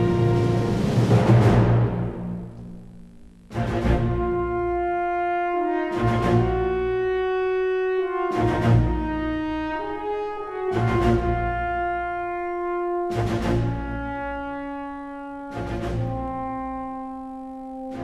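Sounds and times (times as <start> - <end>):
loud drum-like booms: 0.0 - 2.8
french horn and brass notes: 0.0 - 18.0
strings: 0.0 - 18.0.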